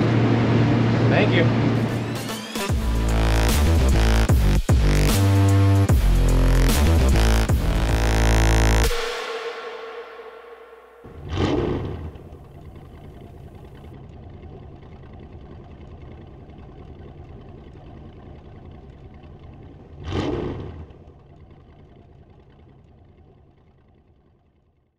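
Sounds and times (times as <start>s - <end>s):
low rumble: 0.0s - 24.7s
whooshing swells: 7.8s - 12.2s.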